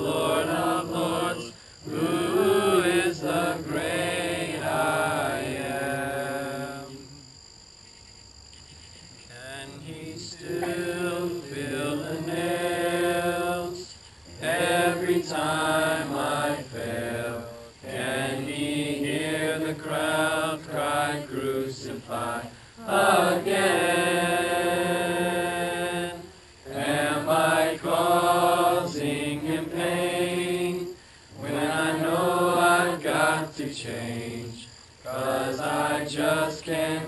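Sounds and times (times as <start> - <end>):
congregation singing a hymn: 0.0 - 7.3, 9.3 - 37.0.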